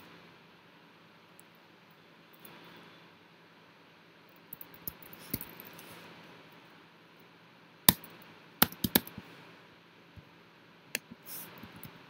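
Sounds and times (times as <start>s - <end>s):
faint steady hiss: 0.0s - 12.0s
computer keyboard keystroke: 8.6s - 9.2s.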